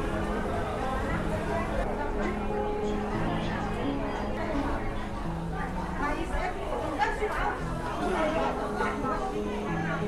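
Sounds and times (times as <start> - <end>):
shoppers chattering: 0.0 - 10.0.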